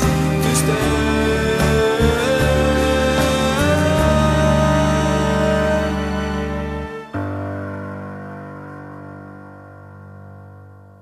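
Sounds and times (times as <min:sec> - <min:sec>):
piano chord sustaining: 0:00.0 - 0:11.0.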